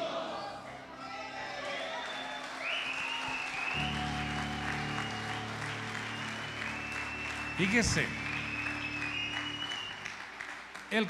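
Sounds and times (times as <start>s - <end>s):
congregation applauding: 1.0s - 11.0s
sustained keyboard chords: 3.8s - 11.0s.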